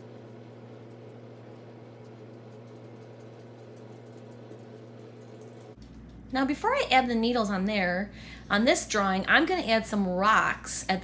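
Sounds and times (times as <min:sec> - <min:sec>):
room tone hum and hiss: 0:00.0 - 0:11.0.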